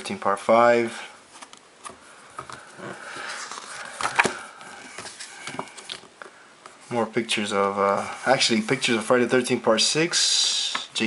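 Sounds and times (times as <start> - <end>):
paper clicks and rustles: 1.3 - 6.1
stiff paper page turning: 2.7 - 4.4.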